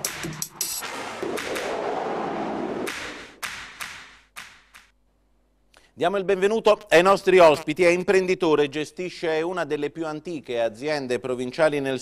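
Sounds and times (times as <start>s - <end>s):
electronic tv theme music: 0.0s - 4.9s
sharp percussive hits: 0.0s - 4.9s
whooshing swell: 0.8s - 3.4s.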